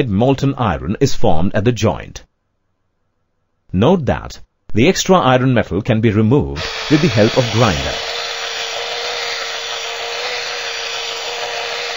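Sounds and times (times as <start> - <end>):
grinder whining on metal rail: 6.6 - 11.9.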